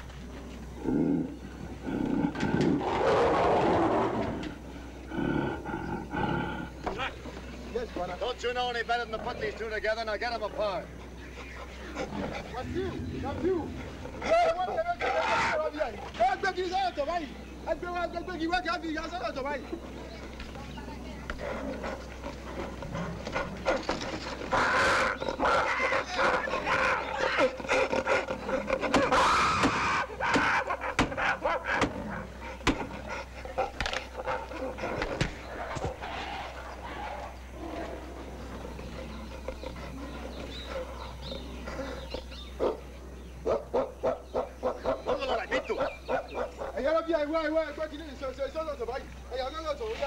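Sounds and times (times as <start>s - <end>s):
animals growling and snarling: 0.7s - 16.8s, 20.7s - 48.8s
men shouting: 11.9s - 16.8s, 24.6s - 27.6s.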